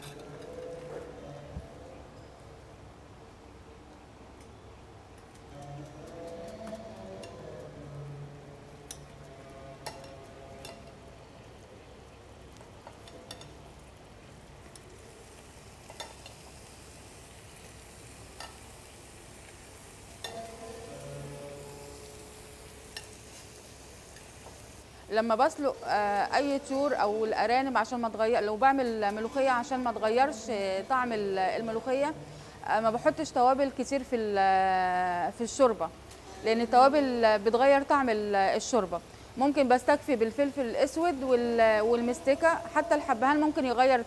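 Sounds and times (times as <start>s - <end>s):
food sizzling in a pan: 8.6s - 27.8s
metal utensils clicking on pan: 9.8s - 11.0s, 12.5s - 13.6s, 15.8s - 16.4s, 18.3s - 18.7s, 20.2s - 21.0s, 22.9s - 23.5s, 24.1s - 24.6s.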